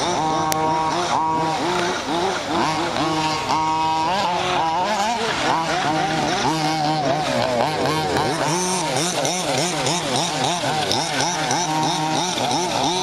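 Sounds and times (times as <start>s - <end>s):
rc car engines revving: 0.0s - 13.0s.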